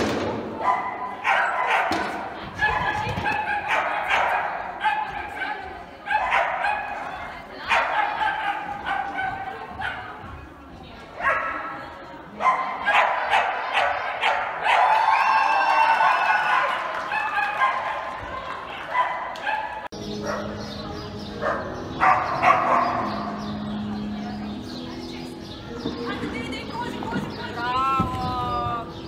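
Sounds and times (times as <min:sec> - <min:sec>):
people's voices: 0:00.0 - 0:29.0
dog barking and yipping: 0:00.6 - 0:07.0, 0:07.7 - 0:10.1, 0:21.4 - 0:23.4.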